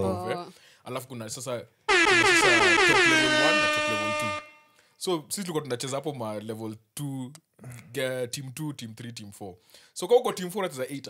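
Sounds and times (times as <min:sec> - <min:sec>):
horn-like sound effect: 0:01.9 - 0:04.7.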